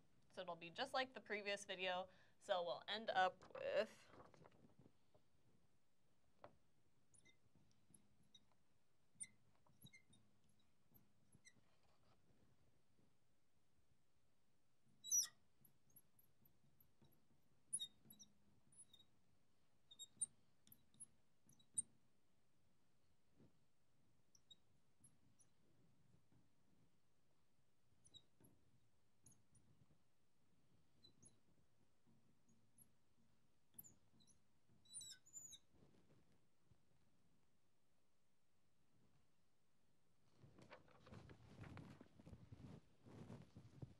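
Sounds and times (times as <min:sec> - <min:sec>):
marker squeaking on glass: 0:07.2 - 0:07.5, 0:08.3 - 0:12.4, 0:15.0 - 0:15.4, 0:17.7 - 0:19.2, 0:19.8 - 0:21.9, 0:28.0 - 0:28.5, 0:30.9 - 0:31.5, 0:33.7 - 0:35.9.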